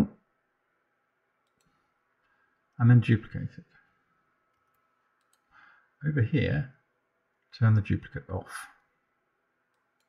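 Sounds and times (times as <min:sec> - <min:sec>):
faint mouse click: 0:01.4 - 0:02.4, 0:04.5 - 0:05.5.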